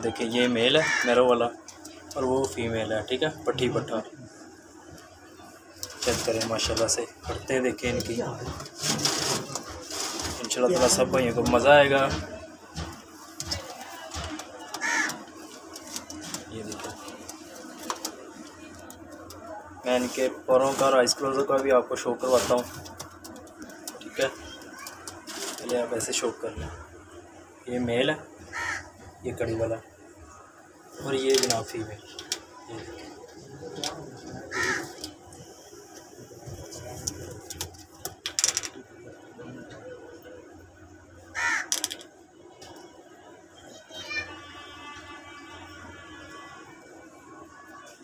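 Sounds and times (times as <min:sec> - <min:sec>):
pigeons cooing: 0:32.1 - 0:35.5
harsh bird call: 0:34.5 - 0:35.0.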